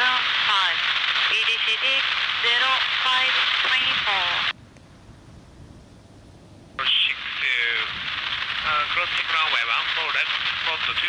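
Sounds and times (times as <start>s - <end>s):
hissy radio voice transmission: 0.0s - 4.5s, 6.8s - 11.0s.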